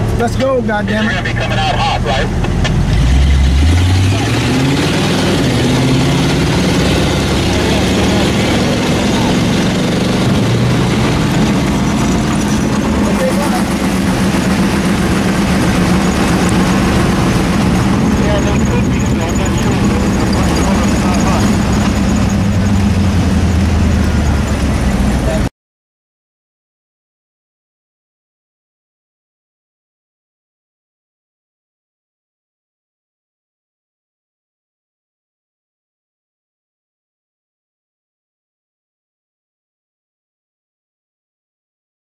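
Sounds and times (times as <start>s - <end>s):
race car engine running: 0.0s - 25.5s
truck engine pitch climbing: 0.0s - 25.5s.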